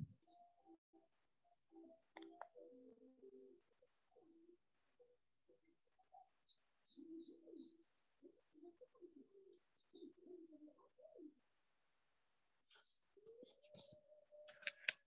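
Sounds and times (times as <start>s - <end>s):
dove cooing: 2.7s - 11.4s, 12.9s - 14.4s.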